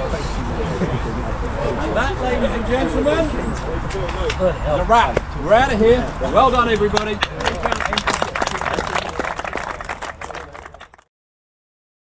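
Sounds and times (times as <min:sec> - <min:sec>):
crowd applauding: 0:06.7 - 0:11.1.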